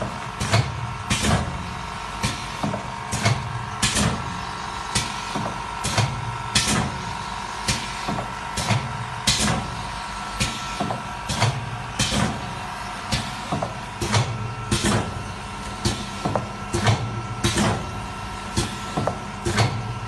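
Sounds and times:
pneumatic cylinders clacking: 0:00.0 - 0:20.0
steady machine hum: 0:00.0 - 0:20.0.

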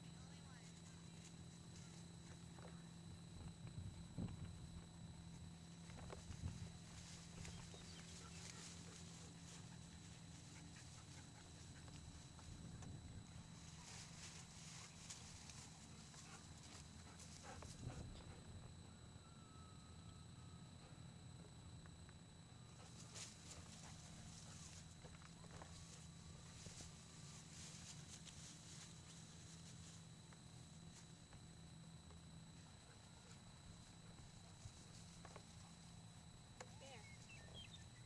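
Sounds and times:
faint ticks and rustles: 0:00.0 - 0:19.2, 0:20.1 - 0:38.0
faint recording hum: 0:00.0 - 0:38.0.

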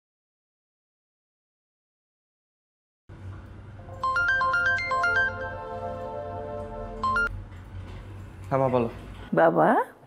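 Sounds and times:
mobile phone melodic ringtone: 0:04.0 - 0:07.3.

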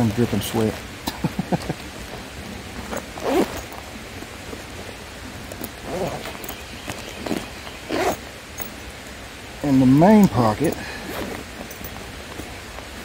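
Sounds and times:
steady hiss: 0:00.0 - 0:13.0
fabric rustling: 0:01.6 - 0:08.7, 0:11.0 - 0:13.0.

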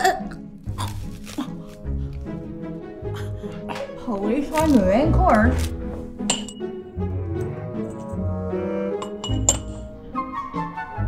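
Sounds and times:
background music sustained notes: 0:00.0 - 0:11.0
metal cloche clinking on platter: 0:06.3 - 0:06.7, 0:09.0 - 0:09.8.

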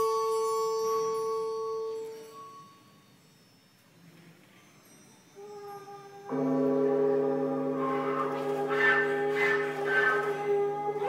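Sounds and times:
bell-like percussion tone ringing: 0:04.6 - 0:11.0
higher instrument notes: 0:06.2 - 0:11.0.

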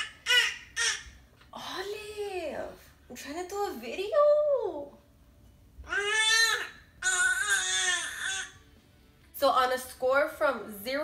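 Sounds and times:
baby crying: 0:05.9 - 0:08.6.

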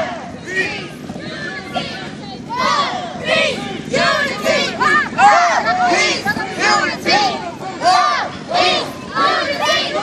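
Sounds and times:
group chanting and shouting: 0:00.0 - 0:10.0.

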